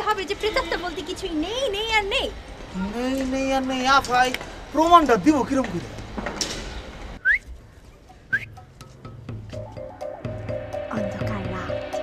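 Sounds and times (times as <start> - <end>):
short rising whistle notes: 7.2 - 7.5
background music: 8.1 - 12.0.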